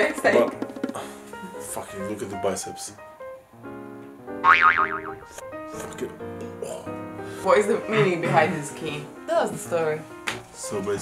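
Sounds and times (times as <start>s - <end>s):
background music: 0.0s - 11.0s
cartoon boing sound effect: 4.4s - 5.2s.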